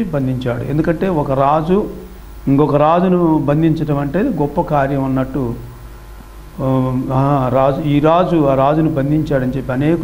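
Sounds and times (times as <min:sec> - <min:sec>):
man preaching: 0:00.0 - 0:05.7, 0:06.6 - 0:10.0
low steady hum: 0:00.0 - 0:10.0.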